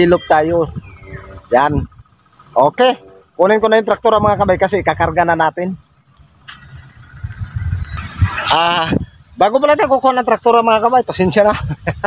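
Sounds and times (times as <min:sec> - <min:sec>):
wind on microphone: 0:00.0 - 0:02.3, 0:03.9 - 0:05.4, 0:06.4 - 0:09.9.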